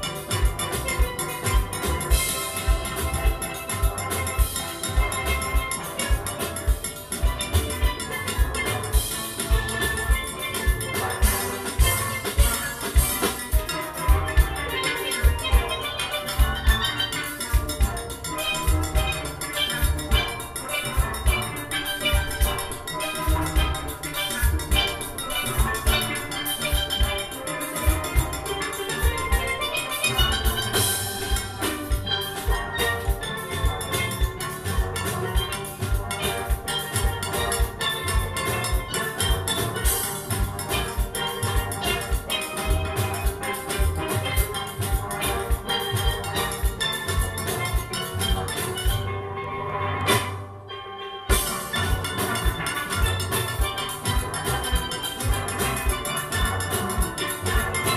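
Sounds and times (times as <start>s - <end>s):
drums and percussion beat: 0.0s - 57.9s
steel band playing: 0.0s - 57.9s.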